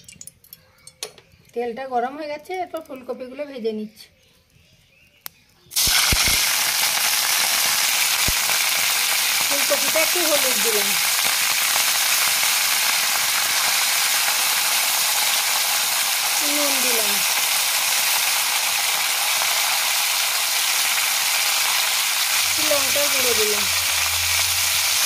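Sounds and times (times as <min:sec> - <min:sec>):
vegetables sizzling in hot oil: 0:05.7 - 0:25.0.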